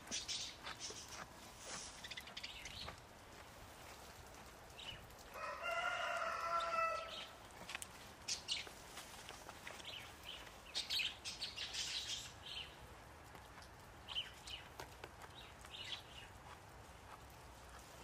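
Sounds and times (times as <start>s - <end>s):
rooster crowing: 5.3s - 7.3s.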